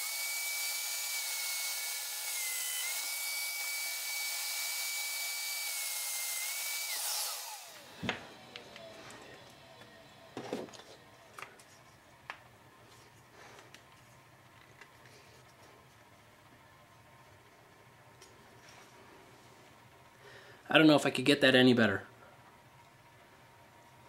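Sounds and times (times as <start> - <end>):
power tool high whine: 0.0 - 11.3
tool winding down: 0.0 - 11.3.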